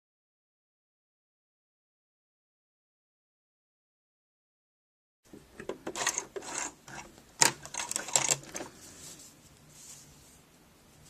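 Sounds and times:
sewing machine clattering: 0:05.6 - 0:08.7.

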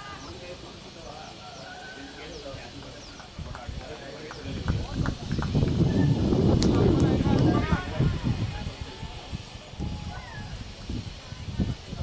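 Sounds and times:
distant indistinct voices: 0:00.0 - 0:12.0.

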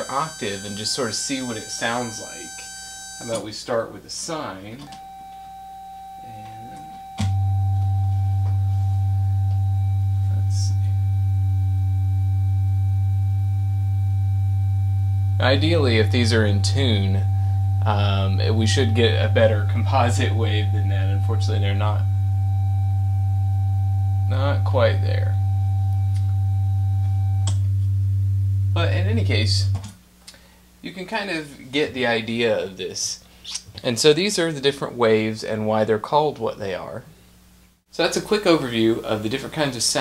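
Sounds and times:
low sine tone: 0:00.0 - 0:03.5, 0:04.8 - 0:30.5
high sine tone: 0:00.0 - 0:30.5.

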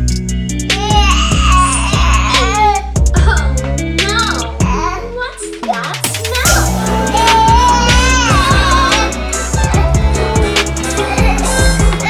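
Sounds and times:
background music with steady beat: 0:00.0 - 0:12.0
baby crying: 0:00.8 - 0:03.5, 0:06.3 - 0:12.0.

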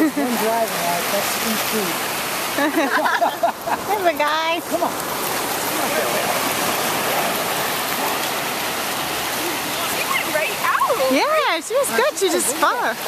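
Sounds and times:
ocean waves breaking: 0:00.0 - 0:13.0.

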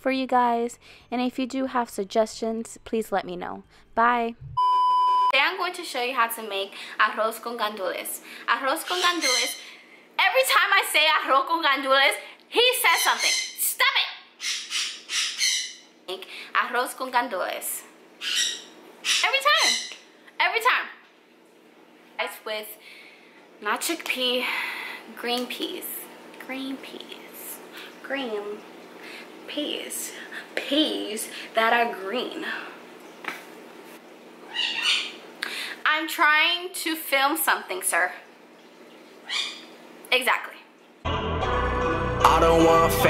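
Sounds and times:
woman speaking: 0:00.0 - 0:04.5, 0:05.3 - 0:09.6, 0:10.2 - 0:14.2, 0:16.1 - 0:17.9, 0:19.2 - 0:21.0, 0:22.2 - 0:22.8, 0:23.6 - 0:28.6, 0:29.5 - 0:32.7, 0:35.8 - 0:38.2, 0:40.1 - 0:40.7
bird calling with high cries: 0:08.8 - 0:09.6, 0:12.9 - 0:13.6, 0:14.4 - 0:15.9, 0:18.2 - 0:20.0, 0:34.5 - 0:35.2, 0:39.2 - 0:39.7
pet animal high-pitched cry: 0:08.8 - 0:09.6, 0:12.9 - 0:13.6, 0:18.2 - 0:20.0, 0:34.5 - 0:35.2, 0:39.2 - 0:39.7.

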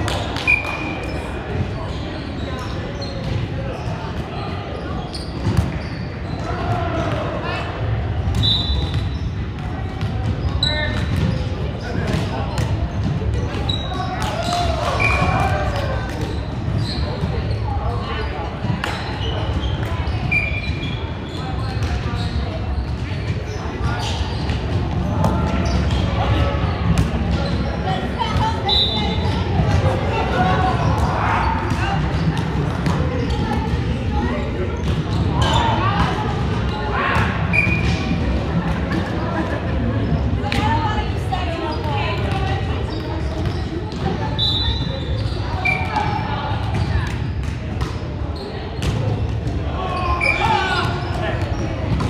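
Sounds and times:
players calling and chatting: 0:00.0 - 0:52.0
sneakers squeaking: 0:00.0 - 0:52.0.

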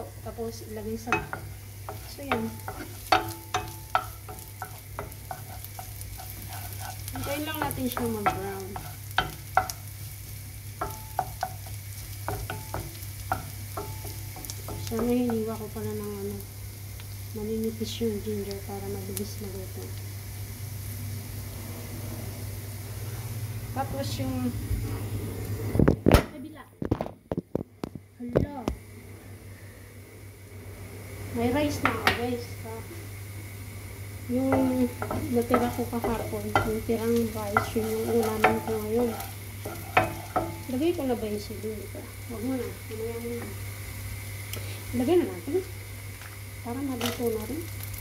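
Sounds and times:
ginger and garlic sizzling in oil: 0:00.0 - 0:48.0
steady low hum: 0:00.0 - 0:48.0
spatula knocking and scraping pan: 0:00.8 - 0:09.9, 0:10.8 - 0:15.8, 0:31.8 - 0:32.3, 0:34.4 - 0:41.3.

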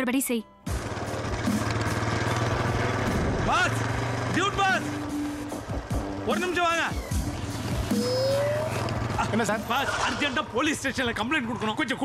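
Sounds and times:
motorcycle engine idling: 0:00.7 - 0:12.0
short rising whine: 0:07.8 - 0:08.9.

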